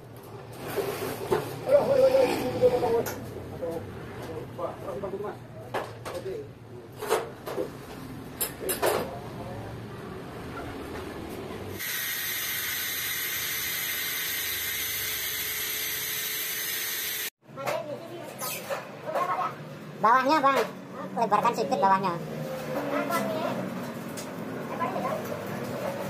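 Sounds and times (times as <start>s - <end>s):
angle grinder cutting steel: 11.8s - 17.3s.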